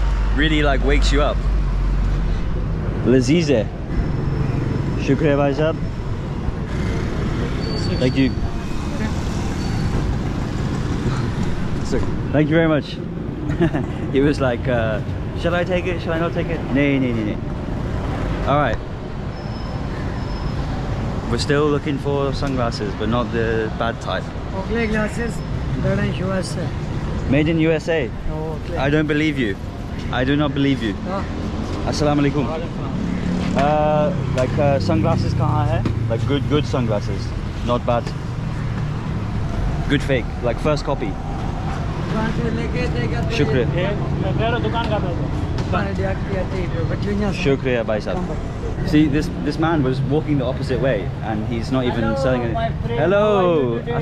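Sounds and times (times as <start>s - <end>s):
road traffic rumble: 0.0s - 54.0s.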